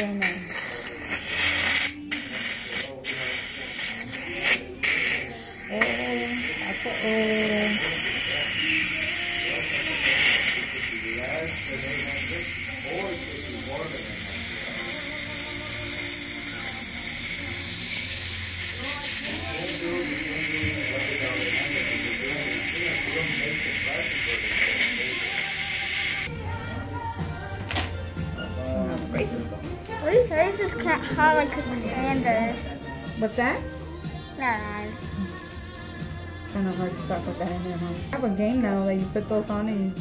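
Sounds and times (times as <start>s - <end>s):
suction device hissing: 0.0s - 26.3s.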